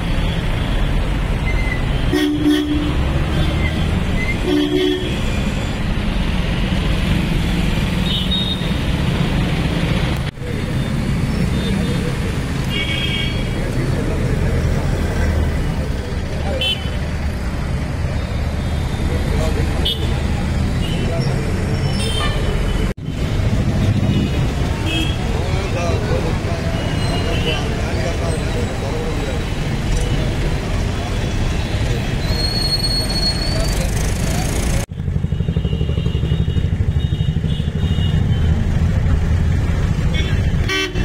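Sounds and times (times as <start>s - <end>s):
road traffic: 0.0s - 41.0s
horn toots: 40.1s - 41.0s.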